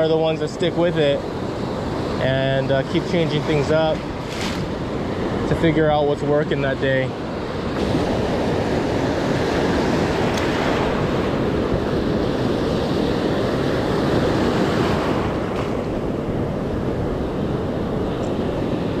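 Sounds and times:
ocean surf breaking on sand: 0:00.0 - 0:19.0
wind on microphone: 0:07.2 - 0:19.0.

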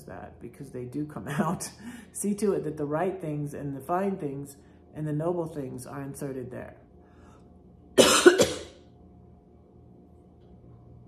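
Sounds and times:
woman coughing: 0:08.0 - 0:08.8.

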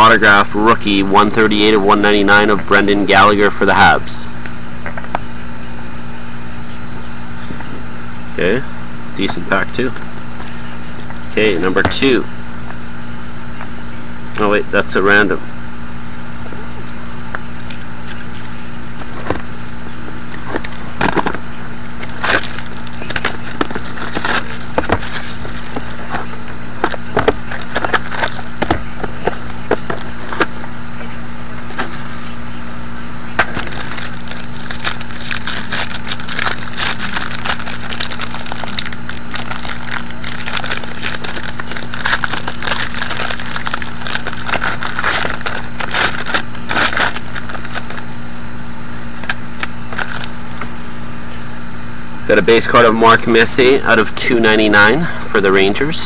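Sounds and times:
steady low hum: 0:00.0 - 0:56.0
foil crinkling: 0:17.5 - 0:19.5, 0:20.2 - 0:30.6, 0:33.4 - 0:48.1, 0:49.0 - 0:50.6.

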